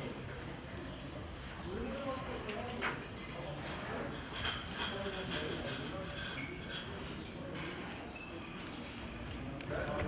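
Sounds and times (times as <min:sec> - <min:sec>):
chain clinks and knocks: 0:00.0 - 0:10.0.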